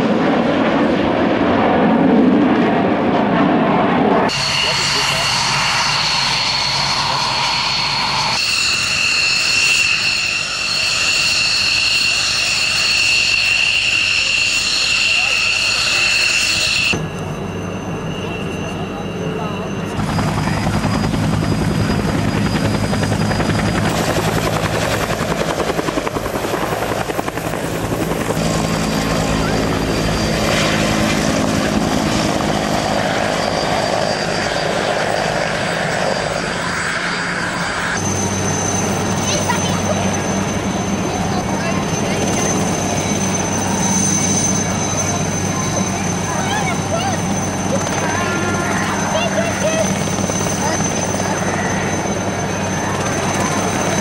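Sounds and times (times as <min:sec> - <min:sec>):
helicopter rotor drone: 0:00.0 - 0:54.0
jet engine high whine: 0:00.0 - 0:54.0.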